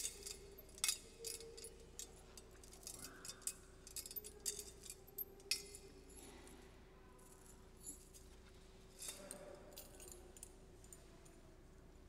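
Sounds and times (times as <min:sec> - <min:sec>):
metal chains clinking: 0:00.0 - 0:06.4, 0:07.2 - 0:10.9.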